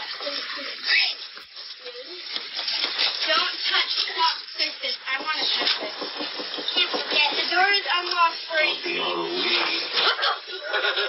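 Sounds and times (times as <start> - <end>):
children talking: 0.0 - 11.0.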